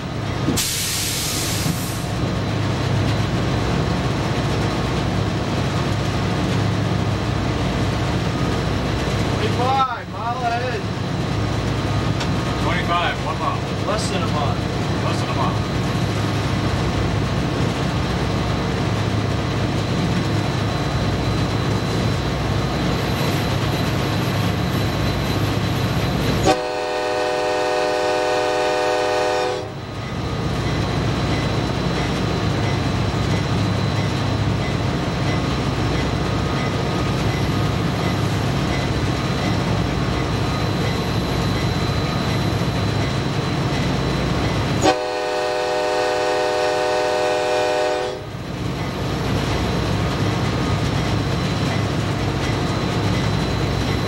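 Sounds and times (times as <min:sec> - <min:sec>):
diesel locomotive engine rumble: 0:00.0 - 0:54.0
rail noise: 0:00.0 - 0:54.0
multi-note air horn blast: 0:26.4 - 0:29.7, 0:44.8 - 0:48.2.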